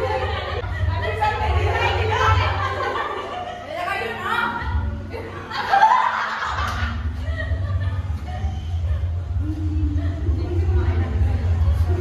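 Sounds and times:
women laughing: 0.0s - 11.1s.

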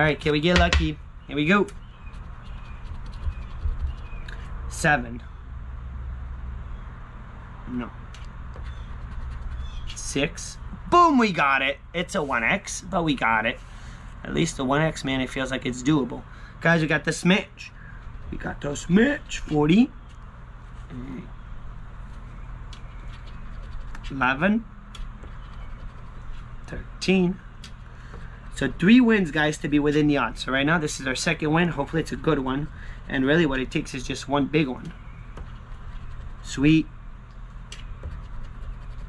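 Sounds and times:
steady low hum: 0.0s - 39.0s
coin scratching lottery ticket: 2.1s - 4.2s, 8.6s - 10.1s, 23.0s - 24.3s, 25.3s - 26.5s, 35.3s - 36.7s, 37.5s - 39.0s.

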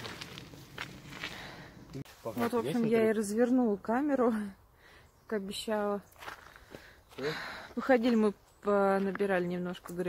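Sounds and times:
footsteps on gravel: 0.0s - 2.8s, 6.1s - 10.0s.

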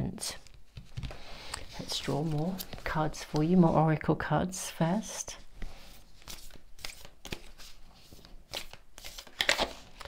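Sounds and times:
cards shuffling and rustling: 0.4s - 3.7s, 5.6s - 10.0s.

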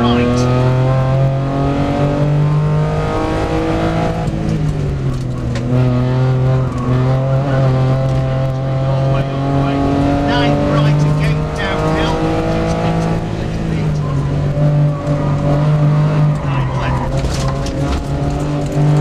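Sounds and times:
car engine revving: 0.0s - 19.0s.

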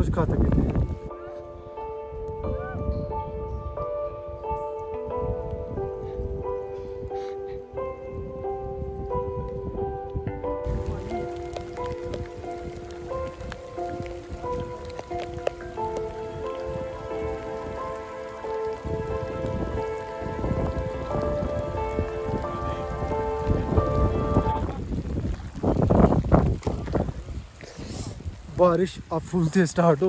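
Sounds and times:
rain pattering: 0.0s - 1.2s, 10.6s - 30.0s
slow melodic background music: 0.0s - 26.2s.

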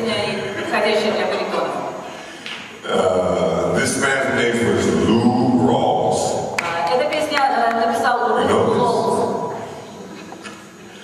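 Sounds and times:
low room noise: 0.0s - 11.0s
man's voice over pa echoing: 2.8s - 6.6s, 8.3s - 9.5s.

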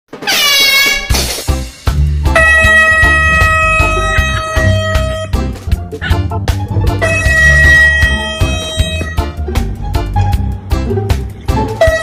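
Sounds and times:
air horn blast: 0.2s - 1.2s, 2.2s - 5.5s, 6.8s - 9.4s, 11.6s - 12.0s
music with heavy bass thumps: 1.0s - 12.0s.

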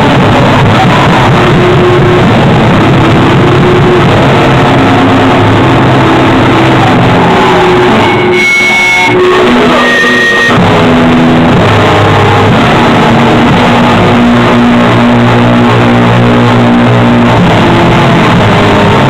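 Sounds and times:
high held guitar tones: 0.0s - 19.0s
loud distorted rock band: 0.0s - 19.0s.

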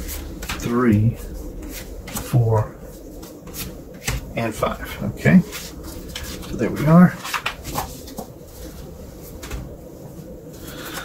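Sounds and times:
cards tapping and rustling: 7.2s - 8.4s.

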